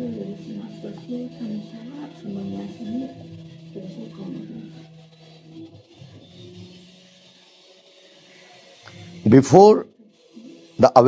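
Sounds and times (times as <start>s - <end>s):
background hiss: 0.0s - 11.0s
faint low humming tones: 0.0s - 11.0s.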